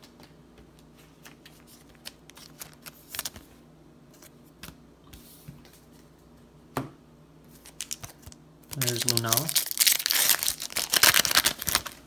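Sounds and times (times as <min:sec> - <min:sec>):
faint steady hum: 0:00.0 - 0:12.0
plastic and foil wrapper crinkling: 0:07.6 - 0:12.0.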